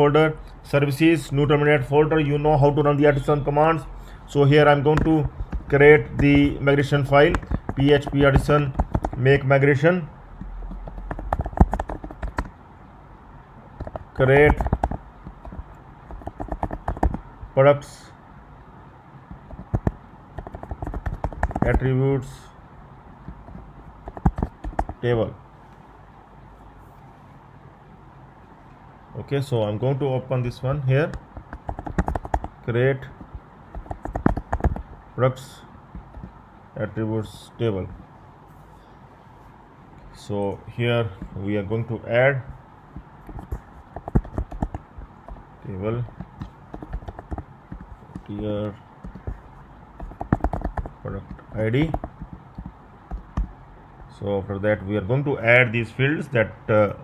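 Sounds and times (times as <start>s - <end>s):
computer keyboard typing: 4.9s - 9.4s, 10.6s - 12.5s, 13.8s - 17.3s, 19.3s - 21.9s, 23.3s - 25.0s, 31.1s - 35.0s, 43.0s - 53.6s.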